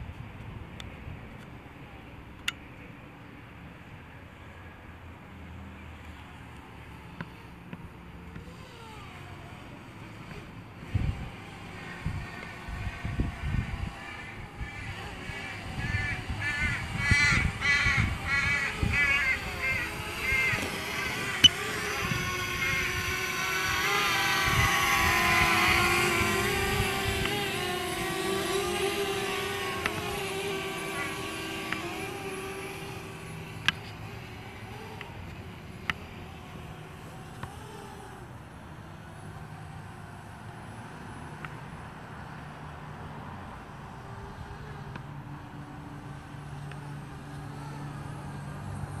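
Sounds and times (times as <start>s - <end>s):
drone propeller hum: 6.5s - 39.6s
crow cawing: 14.0s - 21.5s.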